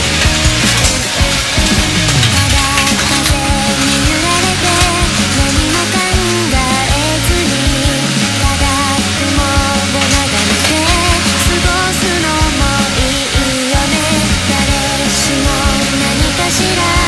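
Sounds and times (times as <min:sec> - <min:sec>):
loud rock music: 0:00.0 - 0:17.0.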